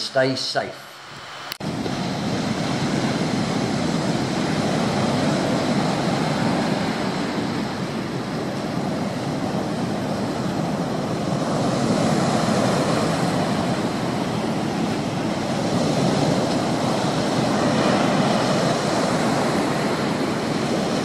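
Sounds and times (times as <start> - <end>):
steady rushing noise: 0.0 - 21.0.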